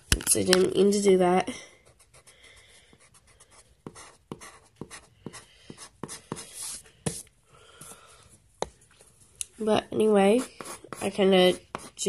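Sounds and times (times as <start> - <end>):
pencil ticking on paper: 1.9 - 6.4.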